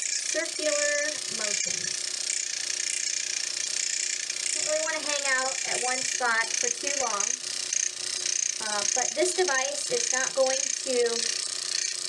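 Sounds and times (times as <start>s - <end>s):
microneedling pen buzzing: 0.0s - 12.0s.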